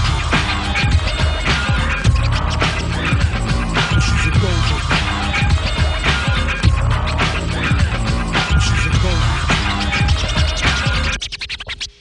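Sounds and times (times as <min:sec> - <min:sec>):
hip-hop beat: 0:00.0 - 0:12.0
turntable scratches: 0:00.0 - 0:12.0.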